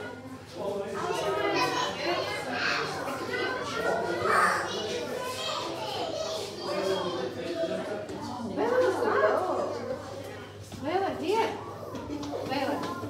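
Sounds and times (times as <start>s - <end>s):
children chattering and calling: 0.0s - 13.0s.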